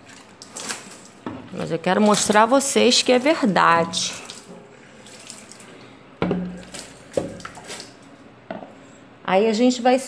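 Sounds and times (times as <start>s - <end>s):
water running and dripping: 0.0s - 8.2s
water splashing on window: 0.1s - 5.6s, 6.4s - 8.0s.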